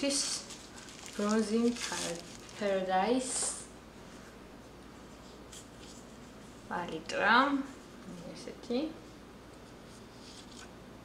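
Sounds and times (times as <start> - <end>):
plastic packaging rustling: 0.0 - 3.5
steady low hum: 0.0 - 11.0.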